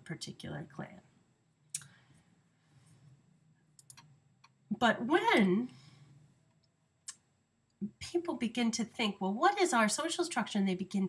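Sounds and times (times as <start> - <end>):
computer mouse clicks: 3.8 - 4.6.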